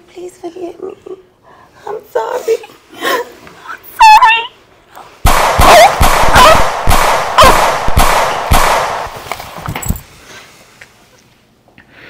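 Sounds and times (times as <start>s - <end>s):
loud sharp bangs: 5.2s - 9.4s
high vocal cry: 5.6s - 6.7s.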